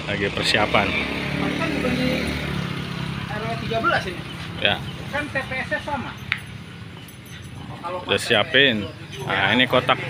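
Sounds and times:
people talking: 0:00.0 - 0:02.4, 0:03.3 - 0:06.3, 0:07.6 - 0:10.0
vehicle engine humming: 0:00.0 - 0:10.0.

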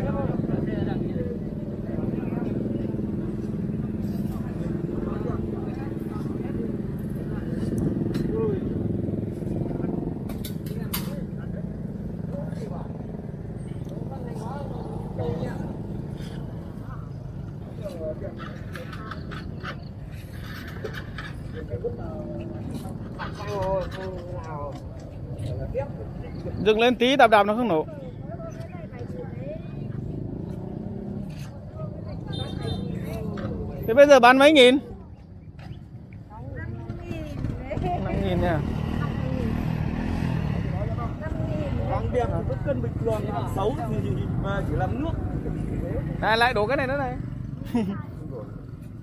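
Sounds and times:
people talking: 0:00.0 - 0:08.8, 0:09.4 - 0:30.1, 0:36.3 - 0:39.6, 0:40.7 - 0:48.6.

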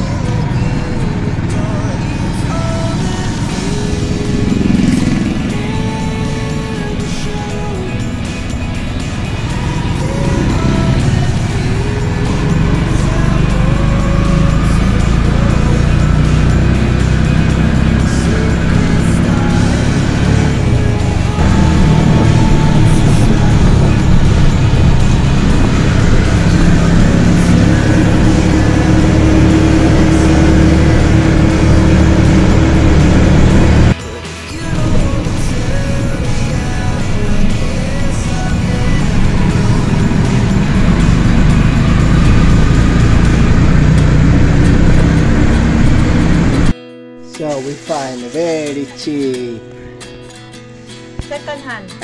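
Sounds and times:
motorcycle engine and road noise: 0:00.0 - 0:46.8
background music: 0:00.0 - 0:52.0.

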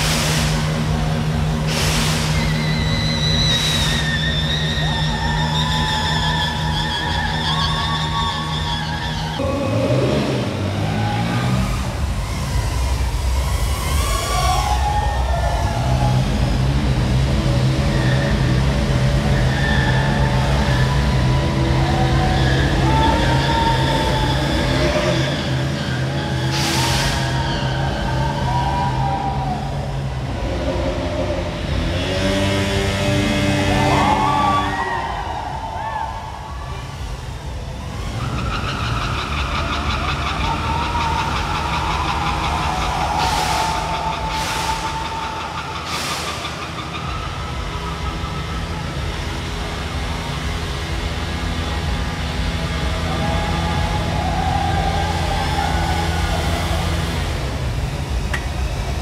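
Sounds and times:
motorcycles revving hard: 0:00.0 - 0:35.2, 0:37.0 - 0:59.0.

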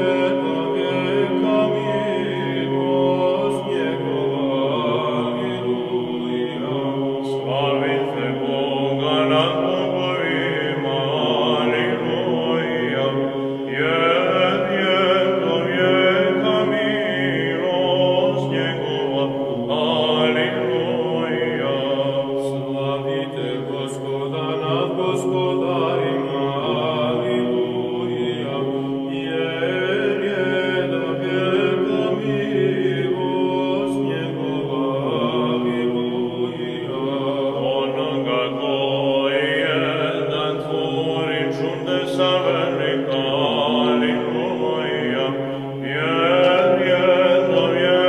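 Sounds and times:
chanted singing over drone: 0:00.0 - 0:48.0.

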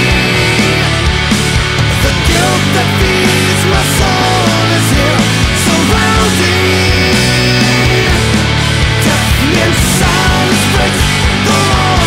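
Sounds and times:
bass holding low notes: 0:00.0 - 0:12.0
distorted electric guitars: 0:00.0 - 0:12.0
steady drum beat: 0:00.0 - 0:12.0.

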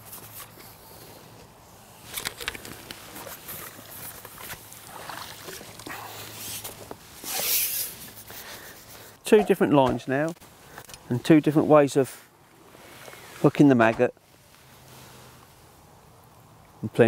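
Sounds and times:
handling clicks and rustles: 0:01.4 - 0:04.8
landing net lifted from water: 0:02.0 - 0:08.2.

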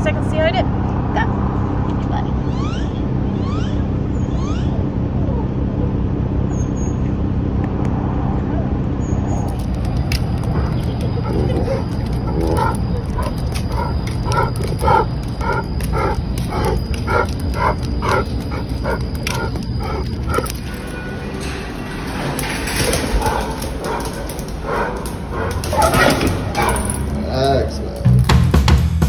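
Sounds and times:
dog barking aggressively: 0:10.4 - 0:20.6, 0:22.8 - 0:27.2.

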